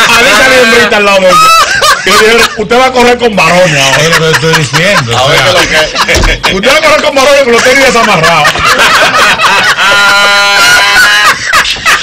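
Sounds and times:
group of people laughing: 0:00.0 - 0:12.0.

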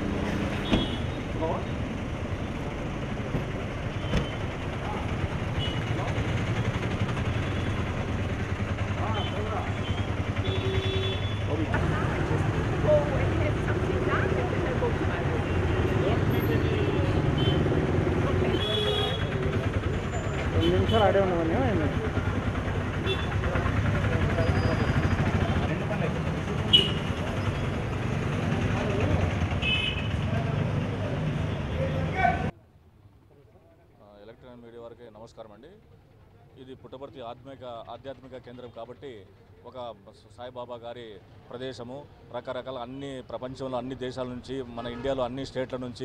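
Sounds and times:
vehicle engines running: 0:00.0 - 0:32.6.

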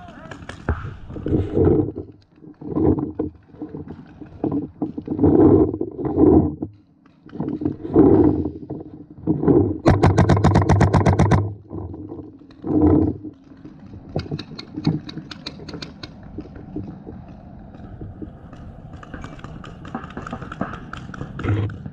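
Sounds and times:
paintball marker rapid firing: 0:09.9 - 0:11.5
muffled bursts of noise: 0:21.2 - 0:21.9.

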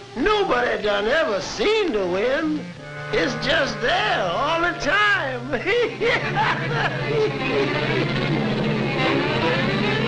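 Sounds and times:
sustained orchestral notes: 0:02.2 - 0:10.0.

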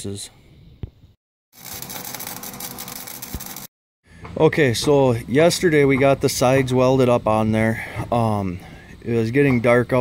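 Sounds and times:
arc welding crackle: 0:01.6 - 0:03.7.

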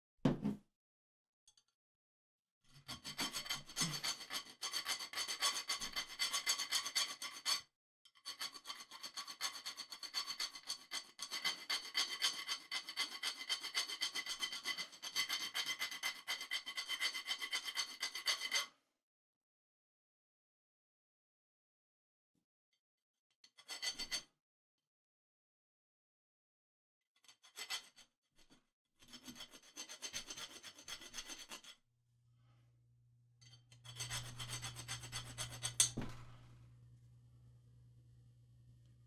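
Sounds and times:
hand file rasping on plastic: 0:02.7 - 0:07.6, 0:08.2 - 0:18.7, 0:27.2 - 0:31.8, 0:33.5 - 0:36.1.

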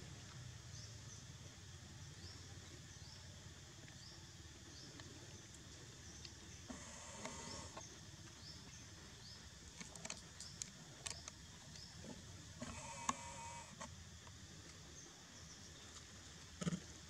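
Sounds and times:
drawn-out squeaky animal calls: 0:06.7 - 0:07.8, 0:12.6 - 0:13.9.

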